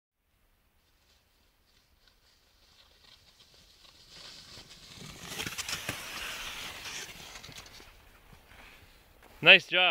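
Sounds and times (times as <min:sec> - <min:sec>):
crunching and scraping in snow: 0:00.8 - 0:09.0.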